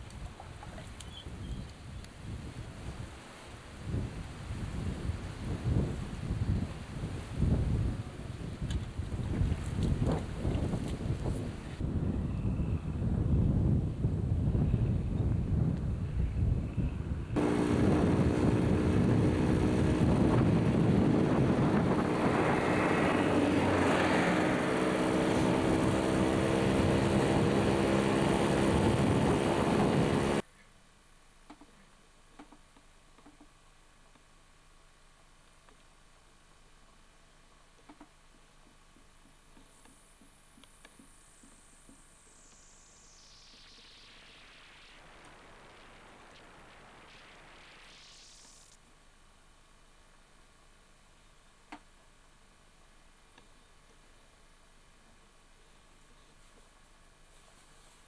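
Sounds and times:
wind buffeting microphone: 0:00.0 - 0:30.4
steady motor drone: 0:17.3 - 0:30.4.

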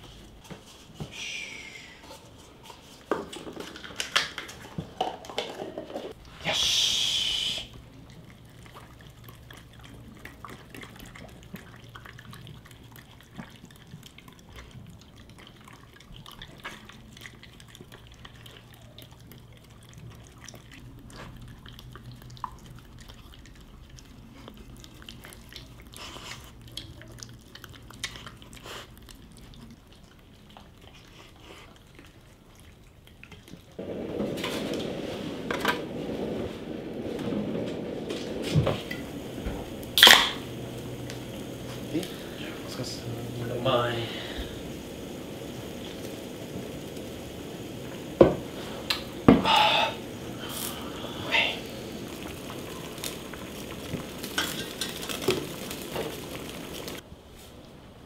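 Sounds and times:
dogs chewing and lapping food: 0:01.8 - 0:06.5, 0:07.7 - 0:57.1.

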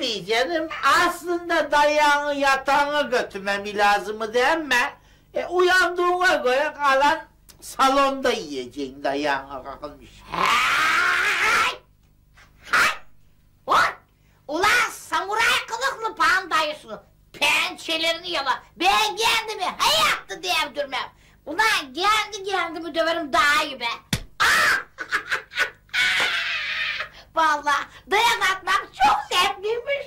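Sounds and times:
woman shrieking: 0:10.2 - 0:11.8, 0:24.4 - 0:25.0, 0:25.6 - 0:27.2
woman laughing loudly: 0:24.4 - 0:27.2.

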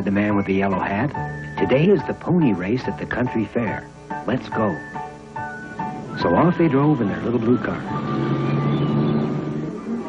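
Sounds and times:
cartoon car engine hum: 0:07.5 - 0:10.0.

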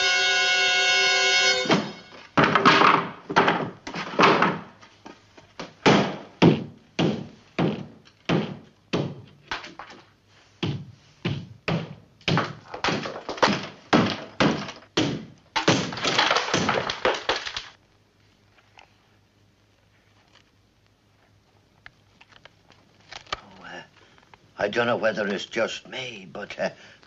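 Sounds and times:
ceiling breaking open: 0:01.6 - 0:04.8, 0:12.3 - 0:17.8
heavy knocks on ceiling: 0:05.6 - 0:09.3, 0:10.6 - 0:16.9.

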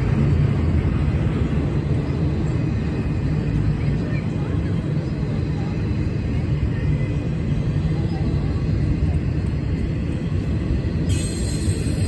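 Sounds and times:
freight train wheels rumbling: 0:00.0 - 0:12.0.

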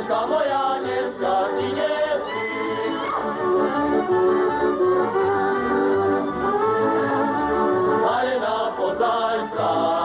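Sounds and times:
group singing folk dance song: 0:00.0 - 0:10.0
instrumental band: 0:02.6 - 0:08.2.

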